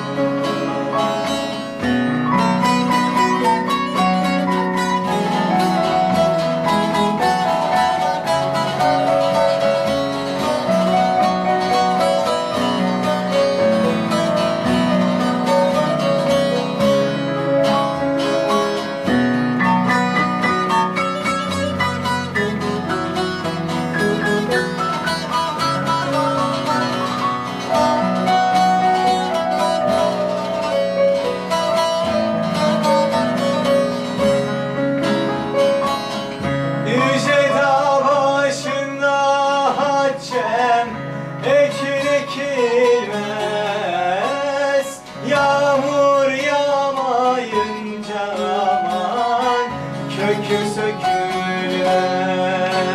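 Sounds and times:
piano chords: 0.0 - 52.9
plucked saz melody: 0.0 - 52.9.

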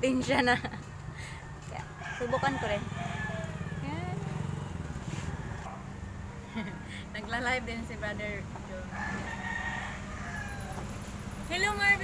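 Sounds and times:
rooster crowing: 1.2 - 4.0, 5.2 - 6.4, 8.9 - 11.0.

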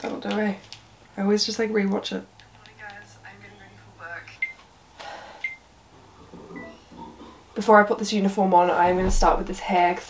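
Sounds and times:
speech through phone speaker: 2.6 - 4.4.

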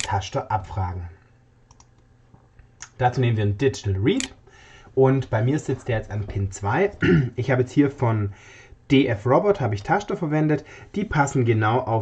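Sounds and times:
computer mouse clicking: 1.7 - 2.1.

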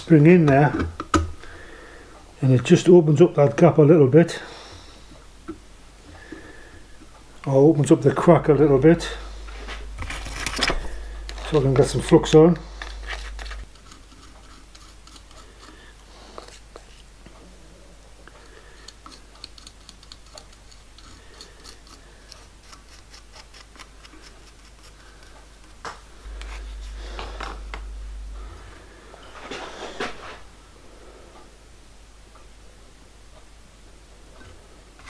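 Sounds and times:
low steady hum: 0.0 - 35.0
wooden stick ticking and scraping: 5.4 - 17.4, 18.2 - 28.6.

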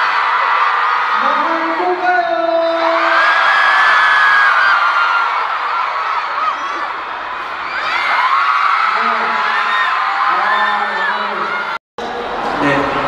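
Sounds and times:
crowd screaming and cheering: 0.0 - 13.0.

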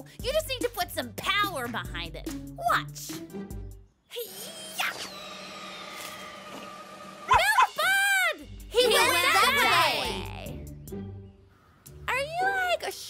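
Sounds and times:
light background music: 0.0 - 4.0, 7.1 - 13.0
cartoon voices exclaiming: 7.3 - 10.5.

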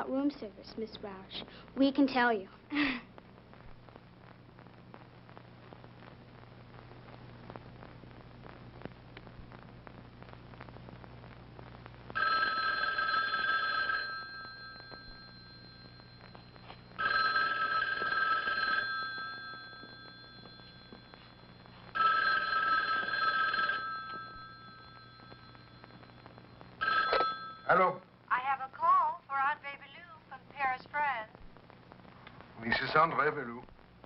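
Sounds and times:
telephone two-tone ringing: 12.2 - 27.8.

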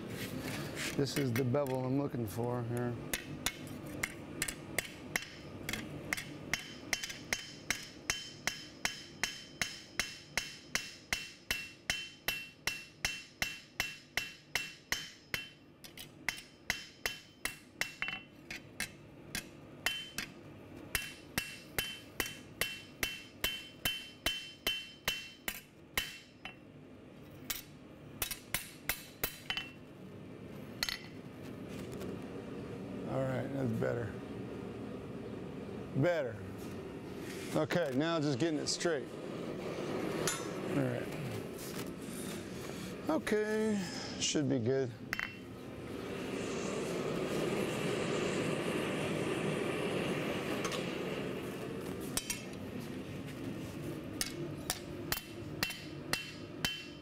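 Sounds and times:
hammer striking metal on anvil: 3.1 - 26.6, 27.5 - 29.8, 30.8 - 31.2, 45.1 - 45.4, 54.2 - 57.0.

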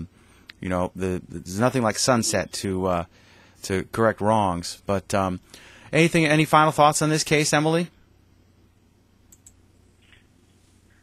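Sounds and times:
faint hum: 0.0 - 11.0
faint clicks: 9.3 - 10.3.

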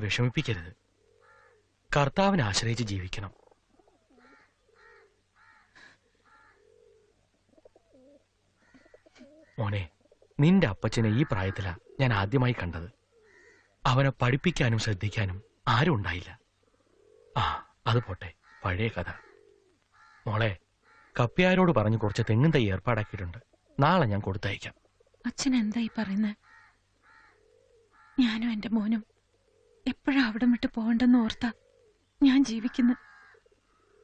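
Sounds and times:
man speaking: 0.0 - 0.8, 1.9 - 3.3, 9.6 - 12.9, 13.9 - 16.4, 17.4 - 19.2, 20.3 - 20.6, 21.2 - 24.7
faint bird calls: 0.0 - 1.7, 3.2 - 34.0
dove cooing: 0.8 - 1.6, 3.3 - 10.4, 11.1 - 12.2, 12.9 - 13.8, 15.3 - 15.6, 16.3 - 17.6, 18.4 - 20.2, 23.4 - 23.8, 24.6 - 34.0.

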